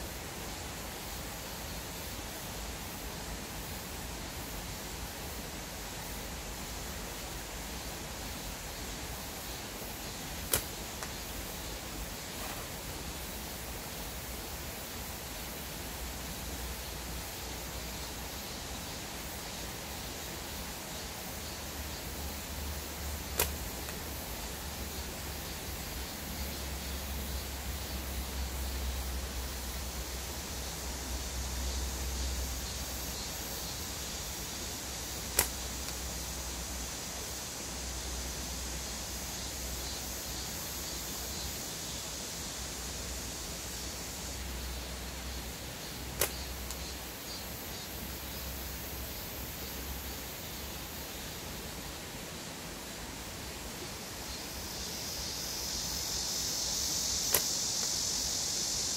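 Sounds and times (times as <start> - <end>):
steady hiss with low rumble: 0.0 - 58.9
slingshot snap: 10.3 - 11.3, 23.2 - 24.1, 35.2 - 36.1, 46.1 - 46.9, 57.2 - 58.0.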